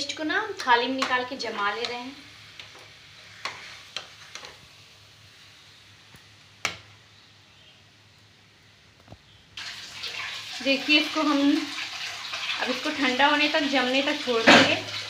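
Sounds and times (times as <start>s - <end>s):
metal spoon scraping a pan: 3.3s - 4.6s.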